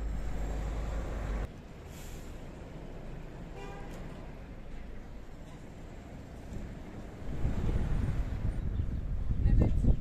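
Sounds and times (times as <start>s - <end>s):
bus engine running: 0.0s - 9.3s
wind buffeting microphone: 7.0s - 10.0s.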